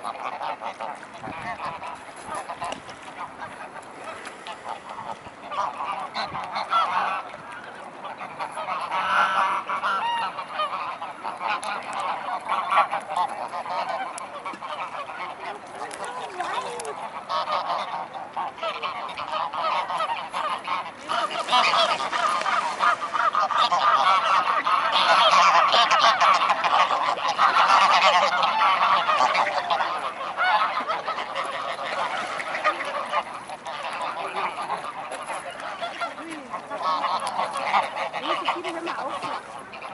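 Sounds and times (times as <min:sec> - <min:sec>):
geese honking and gabbling: 0:00.0 - 0:39.9.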